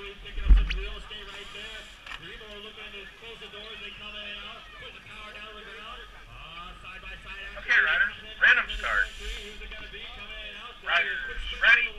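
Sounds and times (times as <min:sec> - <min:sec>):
indistinct distant voices: 0:00.0 - 0:11.9
low thump on microphone: 0:00.4 - 0:00.9.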